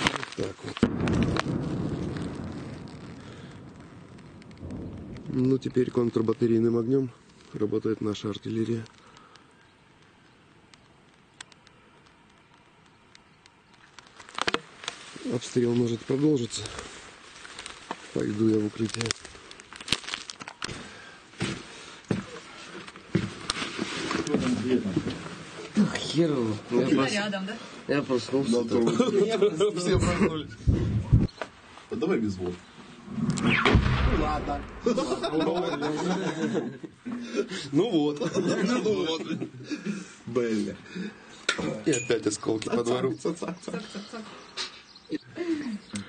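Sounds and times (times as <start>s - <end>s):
low background rustle: 0.0s - 29.0s
footsteps: 14.2s - 25.8s
sharp knocks and dull thuds: 29.9s - 31.3s
distant artillery fire rumble: 33.5s - 35.7s.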